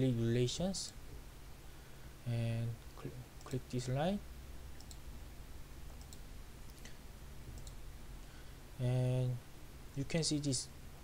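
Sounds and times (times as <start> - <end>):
computer mouse clicks: 4.8 - 5.0, 6.0 - 7.0, 7.6 - 7.8.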